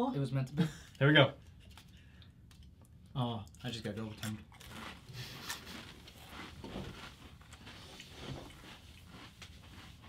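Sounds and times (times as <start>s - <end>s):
people chewing crisps: 1.5s - 10.0s.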